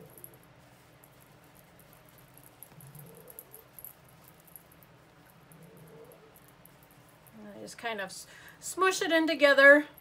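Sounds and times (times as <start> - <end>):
stuffing rustling: 0.0 - 8.1.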